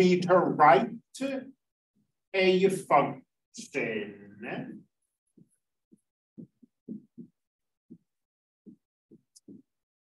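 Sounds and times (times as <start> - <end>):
stylus tapping on tablet screen: 5.3 - 9.8.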